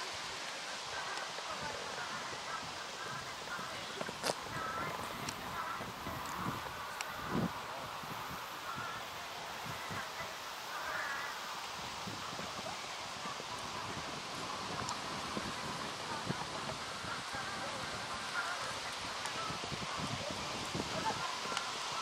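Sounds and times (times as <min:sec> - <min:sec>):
faint distant voices: 0:00.0 - 0:22.0
horse hooves on sand: 0:00.0 - 0:22.0
outdoor background noise: 0:00.0 - 0:22.0.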